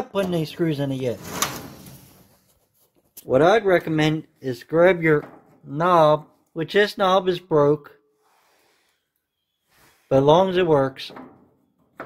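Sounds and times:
sheet metal panel sliding clack: 1.2s - 2.3s.

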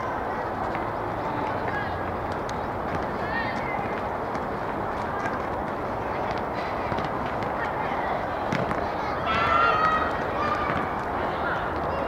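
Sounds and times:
outdoor noise: 0.0s - 12.0s
child shouting: 9.0s - 12.0s.

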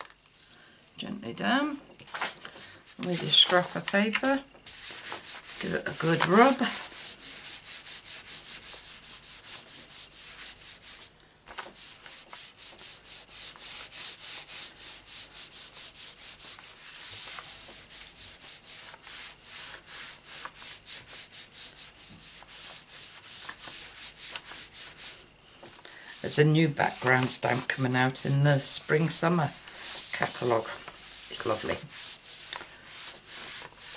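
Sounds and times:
hands rubbing over paper: 4.7s - 33.9s.

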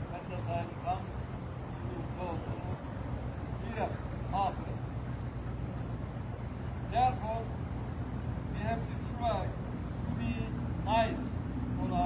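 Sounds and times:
road traffic engine hum: 0.0s - 12.0s.

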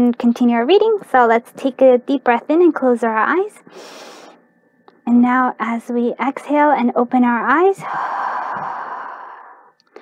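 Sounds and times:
woman breathing out: 7.8s - 10.0s.

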